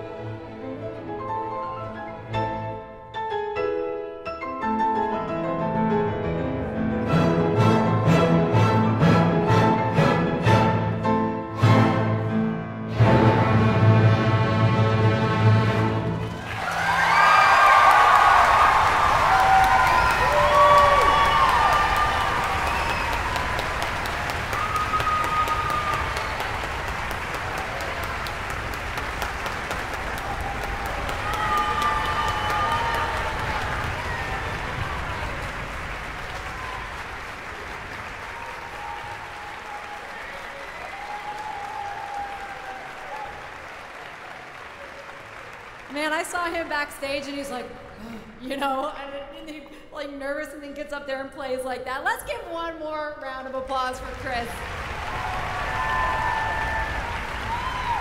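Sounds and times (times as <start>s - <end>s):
audience applauding: 15.7s - 47.4s, 54.0s - 58.0s
whoops and cheers: 16.4s - 26.8s, 30.1s - 35.6s, 36.2s - 37.2s, 38.2s - 45.0s, 55.0s - 58.0s.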